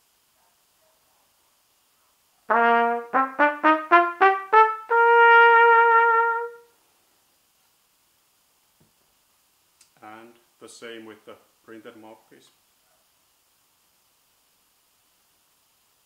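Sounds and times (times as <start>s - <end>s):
trumpet playing a scale: 2.5s - 6.8s.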